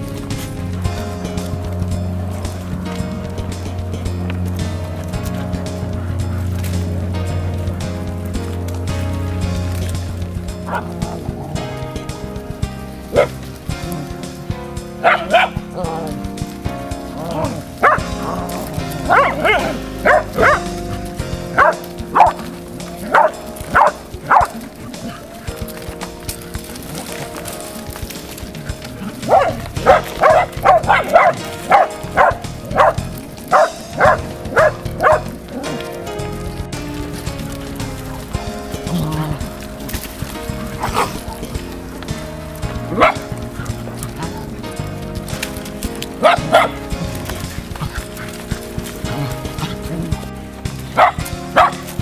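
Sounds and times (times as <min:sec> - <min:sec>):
background music: 0:00.0 - 0:52.0
dogs barking: 0:00.0 - 0:52.0.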